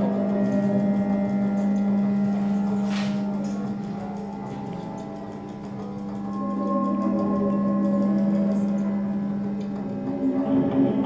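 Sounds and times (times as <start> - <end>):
held higher tones: 0.0 - 11.0
low drone: 0.0 - 11.0.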